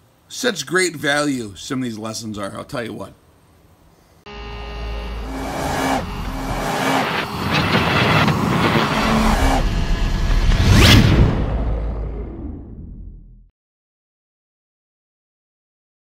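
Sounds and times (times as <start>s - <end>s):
loud whoosh: 4.3s - 13.5s
low rumble with steady tones: 4.3s - 13.5s.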